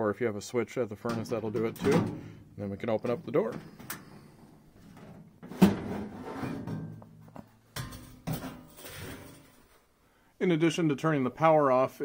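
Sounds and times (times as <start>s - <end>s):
metal door clunk: 1.1s - 2.4s.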